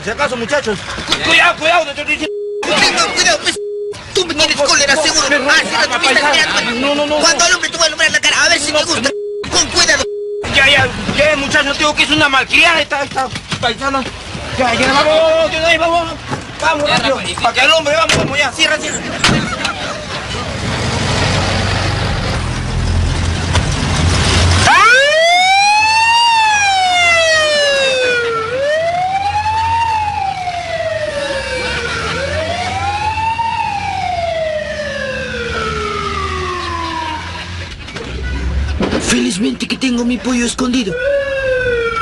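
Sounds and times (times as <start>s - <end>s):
vehicle rumbling: 0.0s - 42.0s
ambulance siren wailing: 2.2s - 4.1s, 8.7s - 10.8s, 24.6s - 37.6s, 40.8s - 42.0s.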